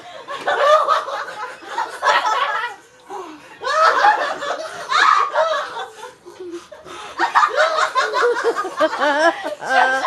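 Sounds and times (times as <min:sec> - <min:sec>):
people laughing: 0:00.0 - 0:02.9, 0:03.6 - 0:10.0.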